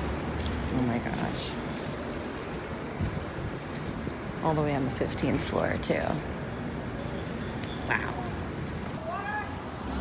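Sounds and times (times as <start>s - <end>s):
distant traffic rumble: 0.0s - 10.0s.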